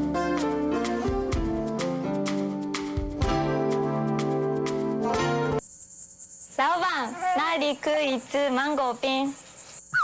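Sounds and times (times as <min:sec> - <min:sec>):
insect chirping: 0:05.6 - 0:10.0
person speaking: 0:06.6 - 0:09.4.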